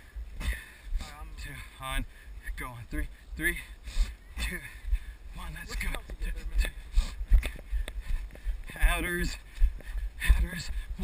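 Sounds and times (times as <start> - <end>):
footsteps jogging on dirt trail: 0.0 - 11.0
wind rumble on microphone: 4.9 - 11.0.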